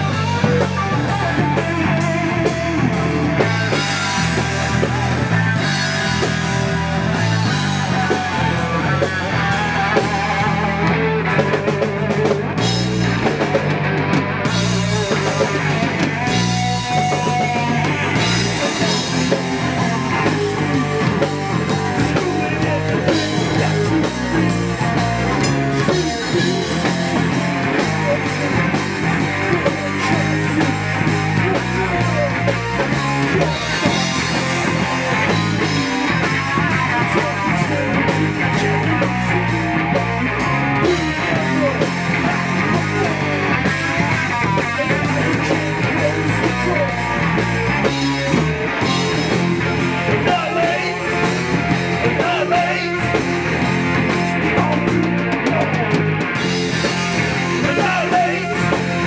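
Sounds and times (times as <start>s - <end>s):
singer's vocals: 0.0s - 13.6s, 14.4s - 59.0s
punk rock band playing live: 0.0s - 59.0s.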